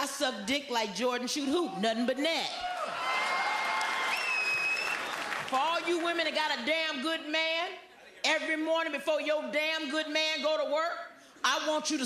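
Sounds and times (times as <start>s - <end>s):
audience applauding: 2.7s - 6.2s
long high whistle: 4.0s - 5.3s.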